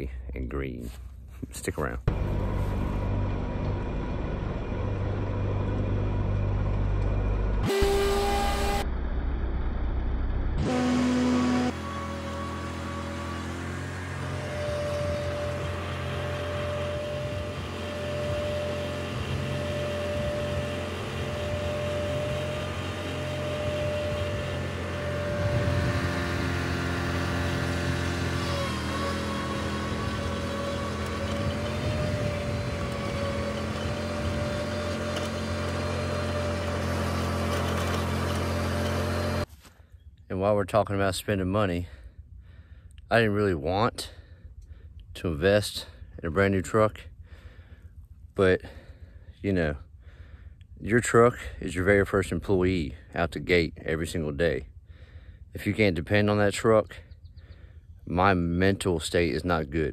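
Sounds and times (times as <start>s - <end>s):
riding lawn mower engine: 2.0s - 8.9s, 9.6s - 39.7s
steady whine: 2.0s - 12.7s.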